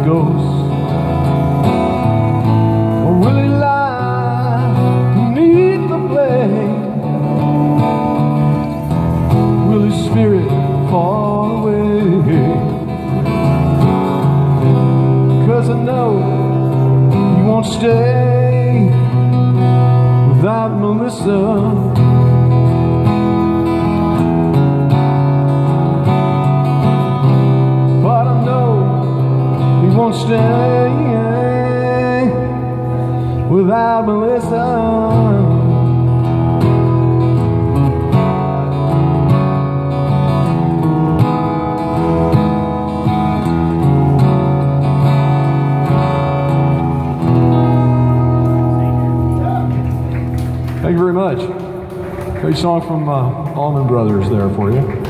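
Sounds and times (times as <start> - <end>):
man singing a slow song: 0.0 - 8.2, 9.3 - 13.6, 14.7 - 22.6, 27.7 - 37.1
strummed acoustic guitar: 0.0 - 55.0.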